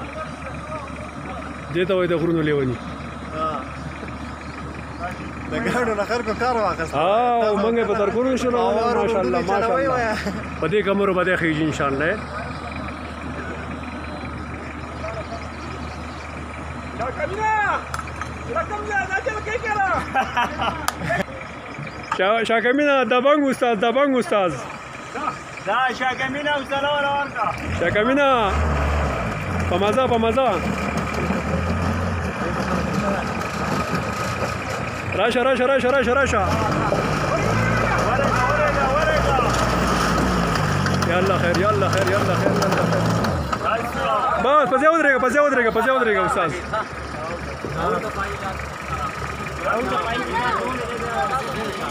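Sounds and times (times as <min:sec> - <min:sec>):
truck engine humming: 0:00.0 - 0:51.9.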